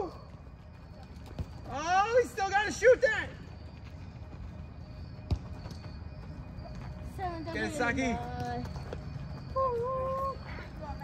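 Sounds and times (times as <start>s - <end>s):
soccer ball being kicked: 0.0s - 1.9s, 5.2s - 6.2s.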